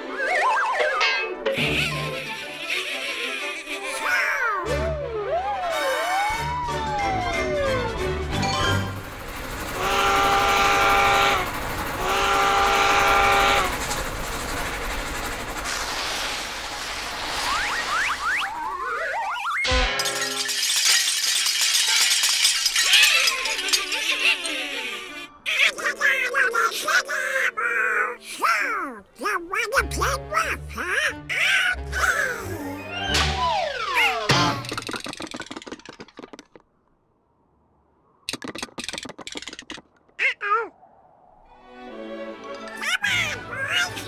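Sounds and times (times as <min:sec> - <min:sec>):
rising whistling slides: 0:00.0 - 0:01.0, 0:16.2 - 0:19.7
orchestral cartoon music: 0:00.0 - 0:09.2, 0:22.9 - 0:34.6, 0:41.5 - 0:44.0
held horn notes: 0:09.8 - 0:13.9
scraping and clattering effects: 0:19.6 - 0:24.9, 0:34.3 - 0:36.9, 0:38.3 - 0:40.2.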